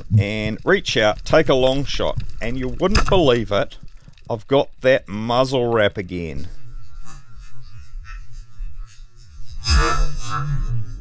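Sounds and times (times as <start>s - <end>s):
low steady hum: 0.0s - 3.8s.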